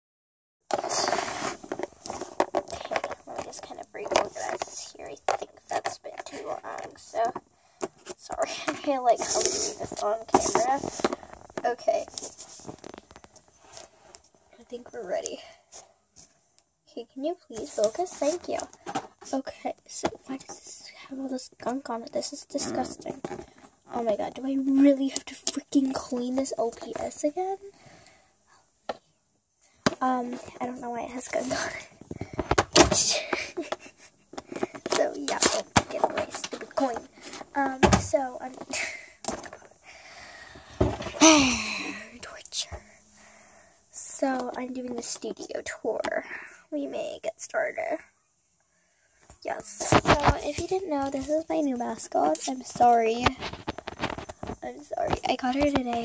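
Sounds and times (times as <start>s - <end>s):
handling clicks and rustles: 29.9s - 39.8s
person whispering: 41.6s - 43.2s.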